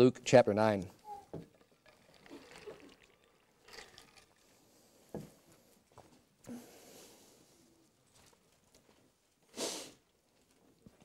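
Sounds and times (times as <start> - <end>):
man sipping and swallowing: 1.0 - 5.5.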